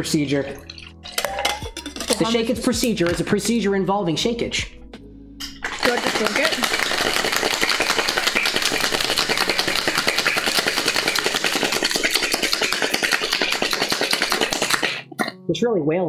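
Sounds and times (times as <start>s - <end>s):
ice rattling in cocktail shaker: 0.0s - 3.2s, 5.6s - 15.0s.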